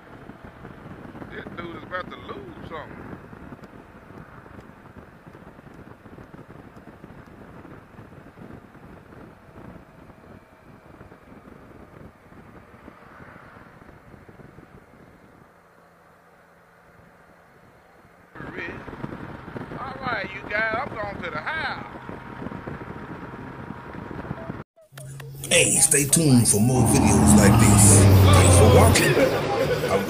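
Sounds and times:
rushing wind: 0:00.0 - 0:15.5
road noise: 0:00.0 - 0:30.0.

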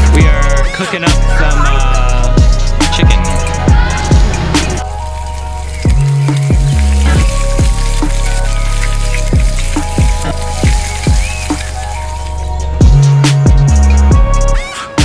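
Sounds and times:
music with bass and drum beat: 0:00.0 - 0:15.0.

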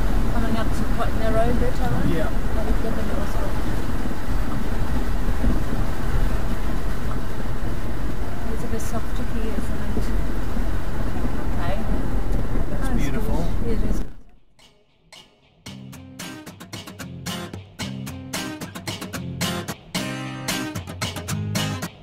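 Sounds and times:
tyres rumbling through water: 0:00.0 - 0:14.2
vehicle engine running: 0:00.0 - 0:14.2.

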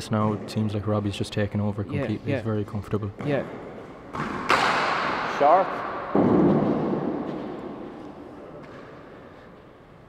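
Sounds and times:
reverberant indoor room noise: 0:00.0 - 0:10.0.

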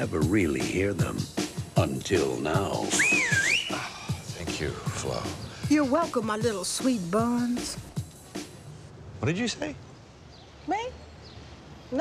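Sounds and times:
background music with a beat: 0:00.0 - 0:08.7
loud finger whistle: 0:02.8 - 0:04.0.

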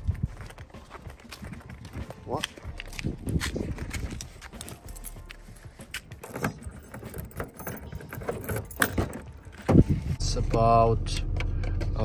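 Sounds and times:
footsteps on pavement: 0:00.0 - 0:06.2.

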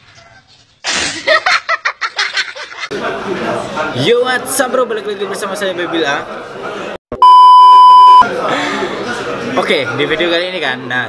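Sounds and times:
high-pitched test-tone beep: 0:07.2 - 0:08.2.

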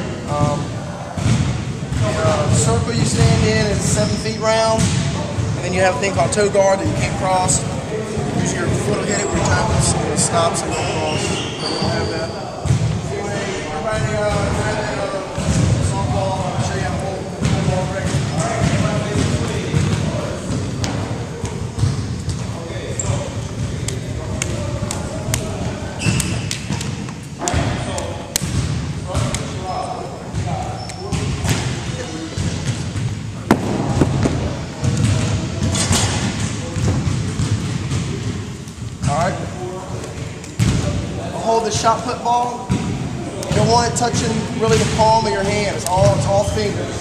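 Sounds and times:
indistinct chatter: 0:00.0 - 0:47.0.

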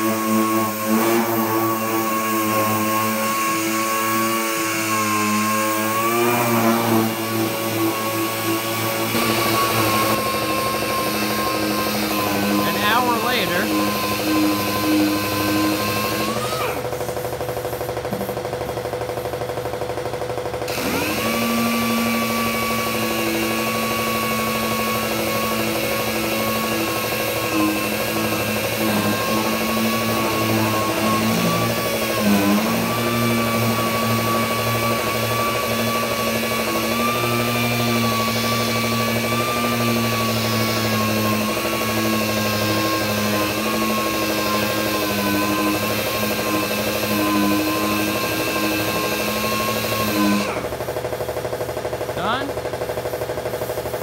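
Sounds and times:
orbital sander whining: 0:00.0 - 0:18.3, 0:20.7 - 0:50.9.

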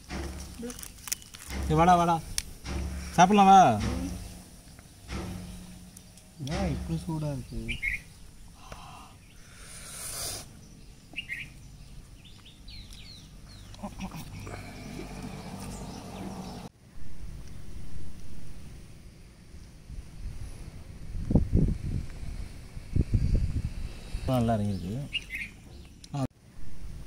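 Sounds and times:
low rumbling bursts: 0:01.4 - 0:09.8
bird chirps: 0:04.8 - 0:09.6, 0:10.5 - 0:14.0, 0:24.6 - 0:26.2.

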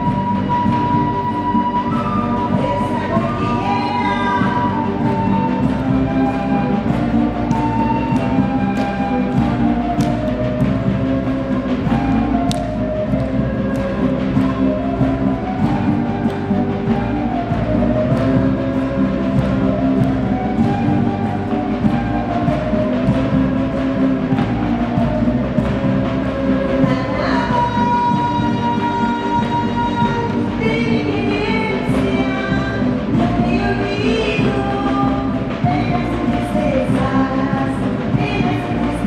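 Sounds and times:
drum beats: 0:00.0 - 0:39.0
folk band playing a melody: 0:00.0 - 0:39.0.

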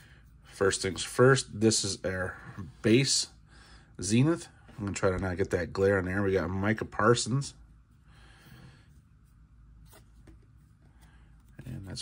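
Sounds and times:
trading cards rubbing and sliding: 0:09.0 - 0:12.0.

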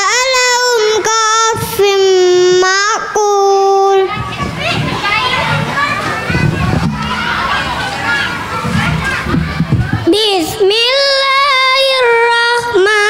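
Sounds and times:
boy chanting into a microphone: 0:00.0 - 0:04.2, 0:10.0 - 0:13.0
chatter of children and adults: 0:00.0 - 0:13.0.

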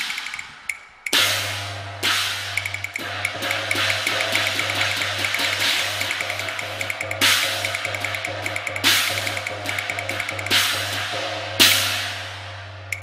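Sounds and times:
opera drums and cymbals: 0:01.1 - 0:12.6
loud cymbal crashes: 0:01.2 - 0:12.7.

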